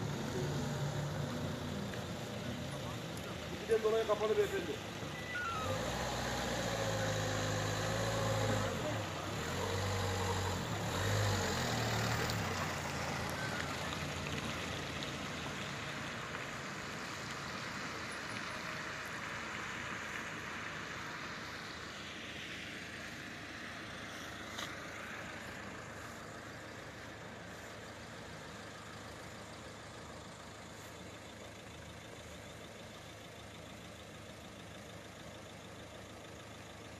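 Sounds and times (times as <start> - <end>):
car engines running: 0.0 - 36.9
traffic hiss on wet road: 0.0 - 36.9.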